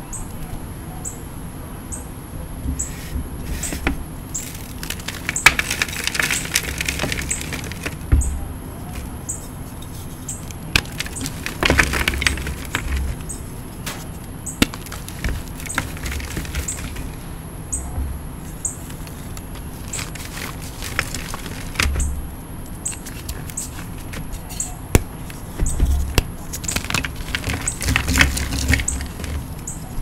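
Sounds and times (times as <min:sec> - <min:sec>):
chalk cracking and crunching: 0:02.8 - 0:08.2, 0:08.8 - 0:17.3, 0:18.4 - 0:22.2, 0:22.9 - 0:30.0
chalk block thumps: 0:23.1 - 0:29.6.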